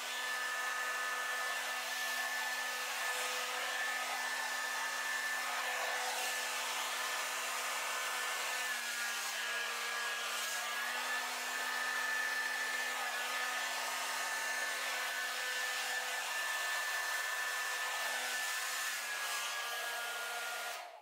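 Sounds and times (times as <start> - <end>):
hair dryer blowing: 0.0 - 21.0.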